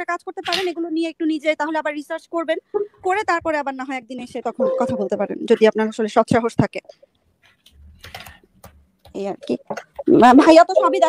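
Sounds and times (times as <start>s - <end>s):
person speaking: 4.5s - 5.8s.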